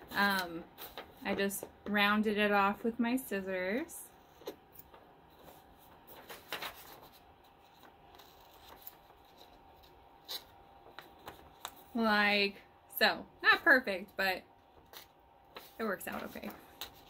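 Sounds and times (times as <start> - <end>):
paper handling: 4.2 - 12.0, 14.7 - 17.0.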